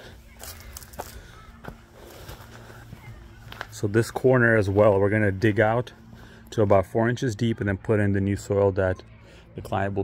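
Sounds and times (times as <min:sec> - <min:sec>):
faint steady hum: 0:00.0 - 0:10.0
footsteps on concrete: 0:00.4 - 0:05.0.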